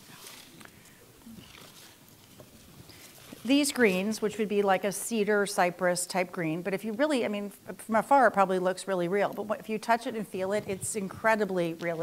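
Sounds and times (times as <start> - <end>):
faint rustling: 0.0 - 4.7.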